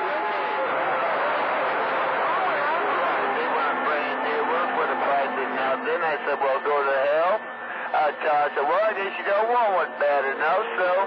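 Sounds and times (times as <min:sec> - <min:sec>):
radio static hiss: 0:02.2 - 0:11.0
garbled man's voice on radio: 0:03.2 - 0:11.0.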